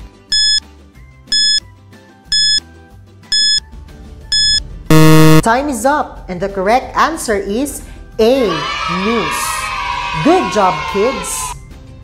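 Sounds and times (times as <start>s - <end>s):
high electronic beeps: 0.3s - 0.6s, 1.3s - 1.6s, 2.3s - 2.6s, 3.3s - 3.6s, 4.3s - 5.4s
loud low buzzer: 4.4s - 5.4s.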